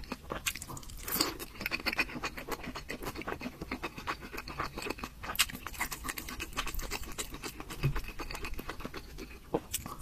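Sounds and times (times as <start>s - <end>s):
wet chewing: 0.0s - 10.0s.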